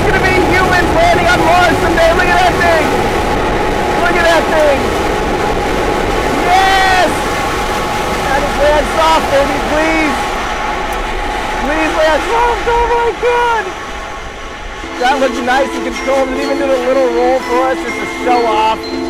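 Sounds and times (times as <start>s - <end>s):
distant rocket engine rumble: 0.0s - 18.0s
people whooping and calling out: 6.3s - 7.4s, 8.3s - 13.8s.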